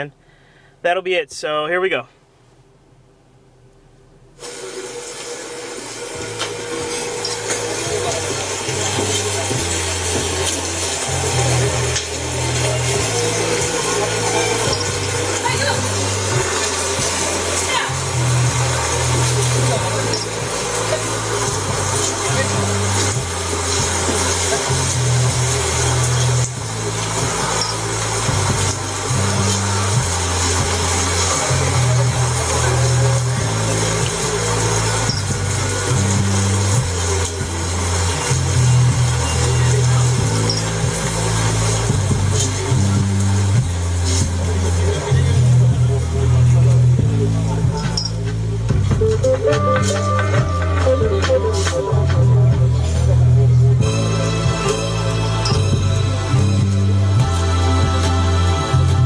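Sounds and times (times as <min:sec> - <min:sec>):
heavy bass notes: 0:00.0 - 0:59.0
electronic song on car stereo: 0:02.4 - 0:59.0.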